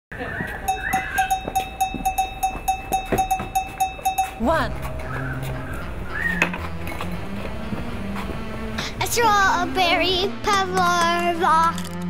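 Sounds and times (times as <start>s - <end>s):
bell-like ringing: 0.7s - 6.4s.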